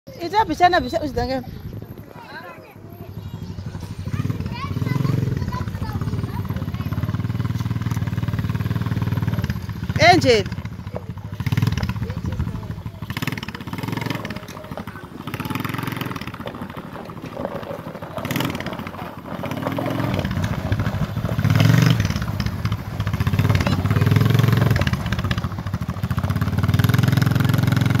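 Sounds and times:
quad bike engine revving: 3.0s - 28.0s.

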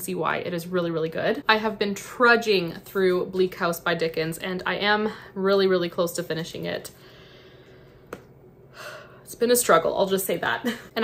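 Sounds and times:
woman breathing: 6.9s - 9.3s.

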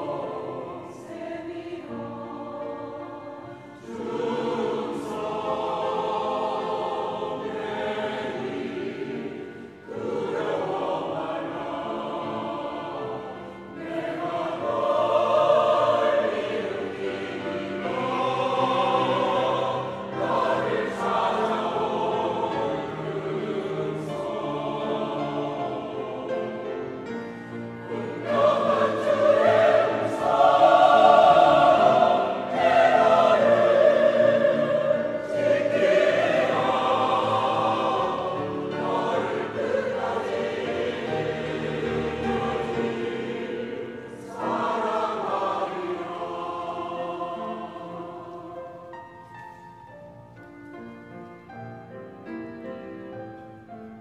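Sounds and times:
choir singing: 0.0s - 49.6s.

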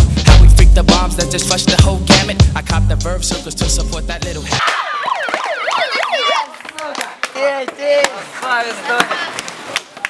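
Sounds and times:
young people shouting: 4.6s - 6.8s
skateboard clacking on pavement: 6.5s - 10.0s.

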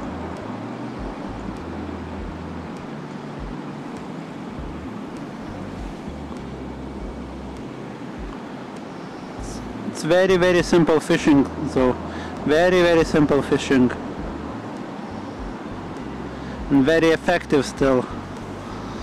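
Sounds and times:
low rumbling: 0.0s - 8.4s, 9.4s - 19.0s
wind on microphone: 0.0s - 10.9s, 11.5s - 16.9s, 17.7s - 19.0s.

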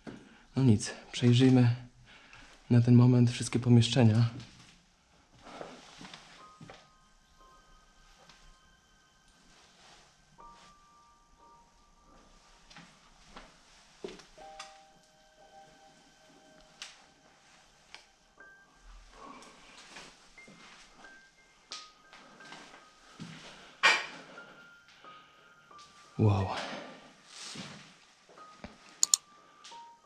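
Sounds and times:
ambient music of held notes: 0.1s - 30.0s.

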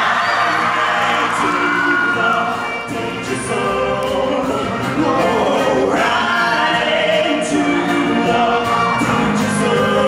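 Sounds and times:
choir singing: 0.0s - 10.0s
live band with guitars and horns: 0.0s - 10.0s
singers on microphones: 0.0s - 10.0s.

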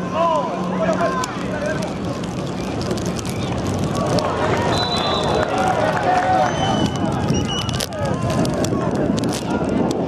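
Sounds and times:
football match crowd noise: 0.0s - 10.0s.

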